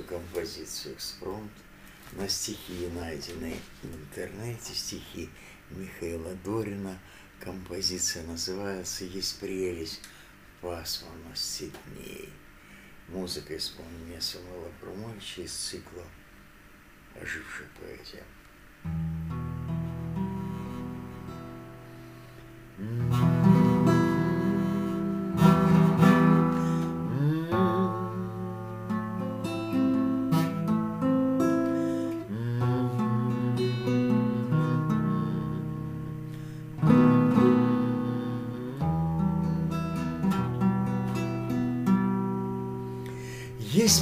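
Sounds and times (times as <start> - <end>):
acoustic guitar chords ringing: 18.8 - 44.0.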